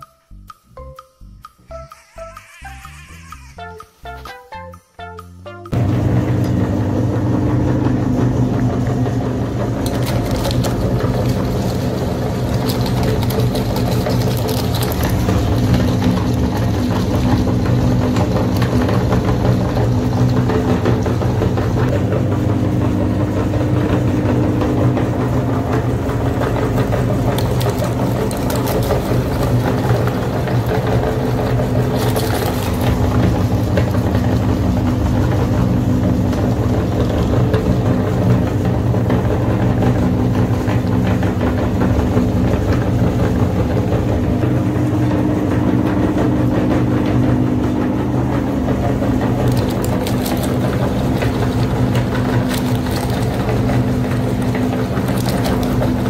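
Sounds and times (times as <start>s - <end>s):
meat grinder motor hum: 5.7s - 56.0s
crunching: 27.1s - 30.1s, 49.4s - 56.0s.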